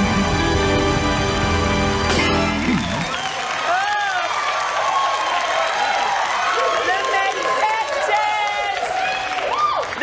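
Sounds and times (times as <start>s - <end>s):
band music: 0.0s - 3.2s
audience applause: 0.9s - 10.0s
audience cheering: 2.0s - 10.0s.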